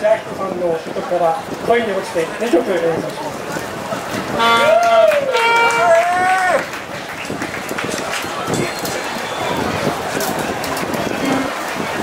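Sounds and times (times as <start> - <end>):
outdoor crowd talking: 0.0 - 12.0
saxophone note bending: 4.4 - 4.7, 5.3 - 5.8.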